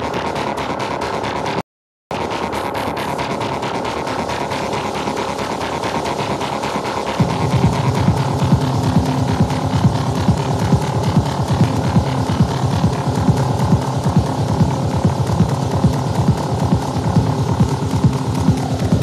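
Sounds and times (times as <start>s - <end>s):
sequenced synth pattern: 0.0s - 19.0s
low rumbling kick and bass: 7.2s - 19.0s.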